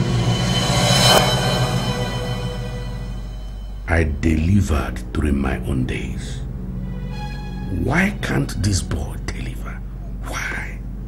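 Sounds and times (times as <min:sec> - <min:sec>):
steady low hum: 0:00.0 - 0:11.0
man whispering: 0:08.6 - 0:10.8.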